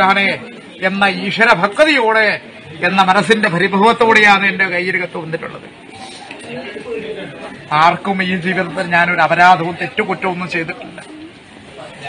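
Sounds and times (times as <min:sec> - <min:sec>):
man speaking: 0:00.0 - 0:05.8, 0:06.6 - 0:11.2.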